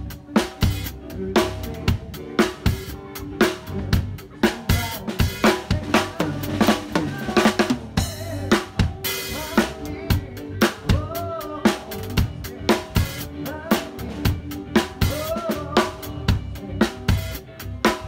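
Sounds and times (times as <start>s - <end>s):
backing song: 0.0s - 18.0s
drum kit playing a groove: 0.0s - 18.0s.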